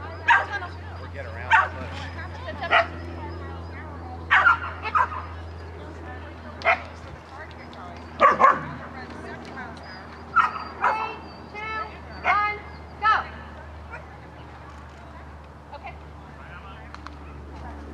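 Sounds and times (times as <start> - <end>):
dog barking: 0.2 - 0.7, 1.5 - 1.9, 2.6 - 3.0, 4.3 - 5.3, 6.6 - 6.9, 8.2 - 8.8, 10.3 - 11.2.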